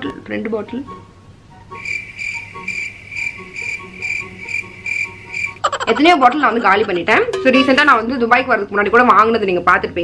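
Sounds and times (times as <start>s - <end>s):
cricket chirping trill: 1.8s - 5.7s
person speaking: 5.3s - 7.8s.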